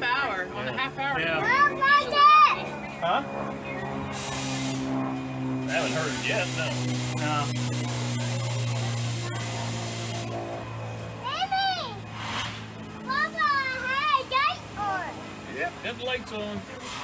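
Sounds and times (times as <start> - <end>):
steady low hum: 0.0 - 17.0
children calling excitedly: 1.3 - 2.8, 11.2 - 12.1, 13.0 - 15.3.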